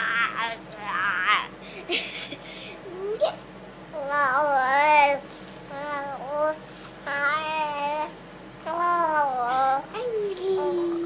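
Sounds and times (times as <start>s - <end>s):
baby cooing: 8.7s - 11.0s.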